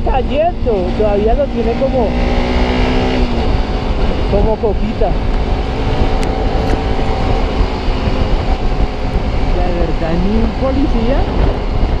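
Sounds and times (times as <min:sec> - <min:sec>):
motorcycle engine running: 0:00.0 - 0:12.0
wind and road rush: 0:00.0 - 0:12.0.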